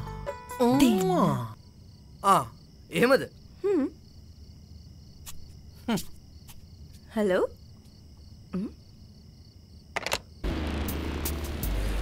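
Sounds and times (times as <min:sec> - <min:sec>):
insect chirping: 0:00.0 - 0:10.4
person murmuring hmm: 0:08.5 - 0:08.8.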